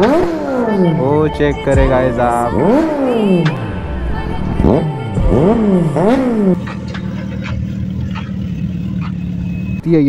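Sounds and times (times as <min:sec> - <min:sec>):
motorcycle engine at steady revs: 0:00.0 - 0:03.6, 0:04.7 - 0:09.8.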